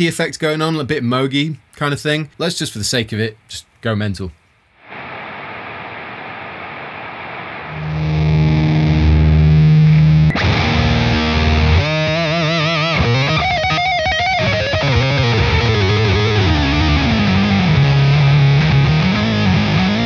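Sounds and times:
distorted electric guitar: 0:04.9 - 0:20.0.

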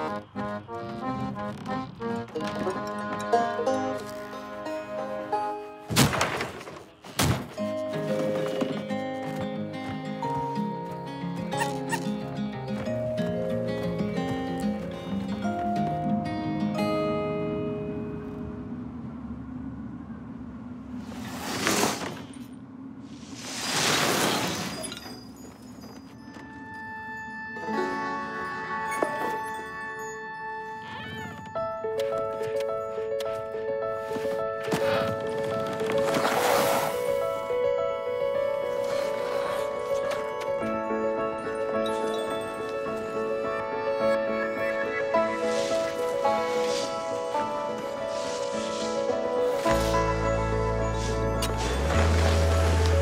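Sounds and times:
orchestral film music: 0:00.0 - 0:05.9, 0:26.5 - 0:53.0
wooden doghouse crashing over: 0:05.9 - 0:07.6.

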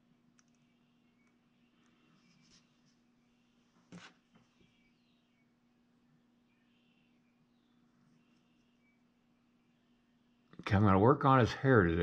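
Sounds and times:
faint low hum: 0:00.0 - 0:12.0
faint clicks: 0:00.3 - 0:02.0.

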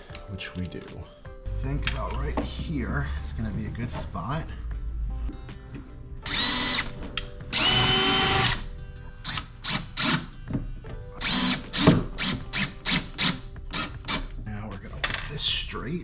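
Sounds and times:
cordless drill driving screws: 0:06.3 - 0:06.9, 0:07.5 - 0:08.6, 0:11.2 - 0:14.3.

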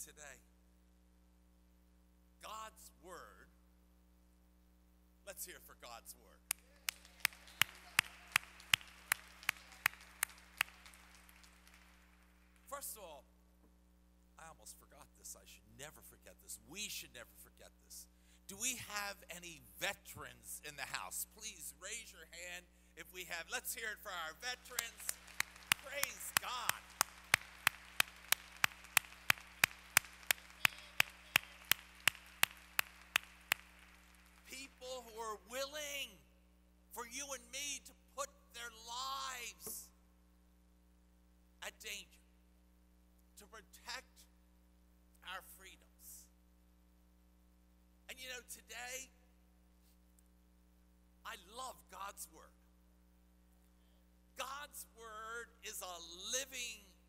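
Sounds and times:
hands clapping steady beat: 0:06.5 - 0:12.7, 0:24.4 - 0:34.8
faint clapping from others: 0:06.5 - 0:12.8, 0:24.4 - 0:35.0
faint crowd applause: 0:06.6 - 0:12.7, 0:24.4 - 0:34.8.

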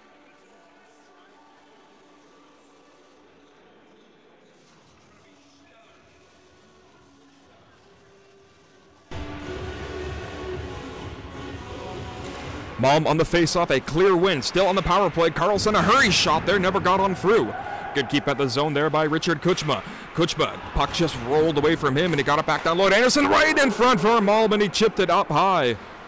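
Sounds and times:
low hum of ice rink: 0:00.0 - 0:26.0
arena music: 0:09.1 - 0:26.0.

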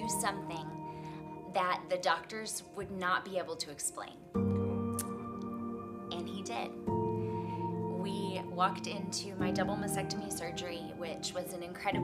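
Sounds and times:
sustained music chord: 0:04.4 - 0:11.0
short sharp click: 0:05.0 - 0:05.2.

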